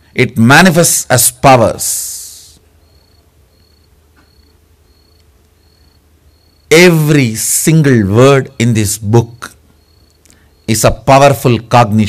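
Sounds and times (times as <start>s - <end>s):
cricket chirping: 2.6s - 7.5s, 8.6s - 12.0s.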